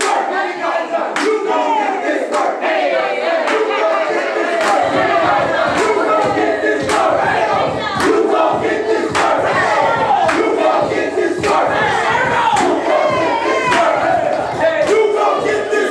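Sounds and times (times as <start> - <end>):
group shouting and chanting: 0.0 - 15.9
heavy beat: 0.0 - 15.9.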